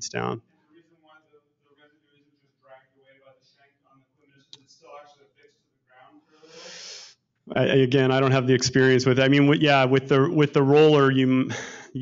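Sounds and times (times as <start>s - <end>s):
faint distant speech: 0.1s - 6.8s.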